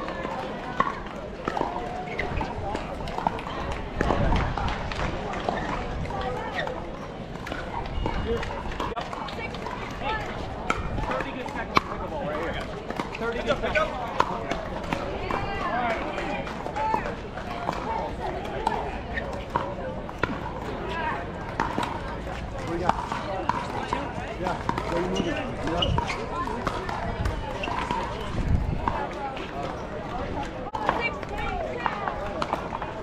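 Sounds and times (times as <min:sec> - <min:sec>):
hubbub of voices: 0:00.0 - 0:33.0.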